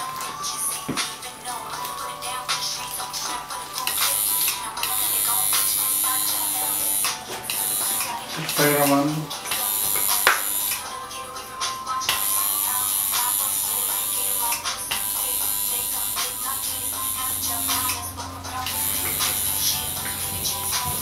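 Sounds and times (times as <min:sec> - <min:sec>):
background music: 0:00.0 - 0:21.0
tattoo machine buzzing: 0:01.8 - 0:21.0
person speaking: 0:08.2 - 0:09.4.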